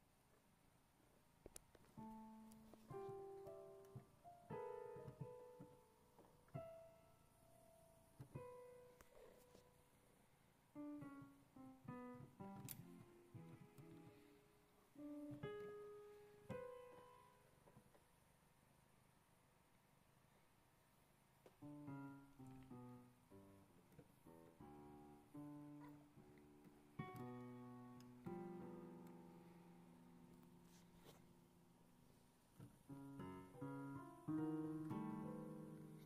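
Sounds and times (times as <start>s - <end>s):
piano notes on digital keyboard: 1.8s - 9.9s, 10.7s - 17.7s, 21.6s - 31.8s, 32.6s - 36.0s.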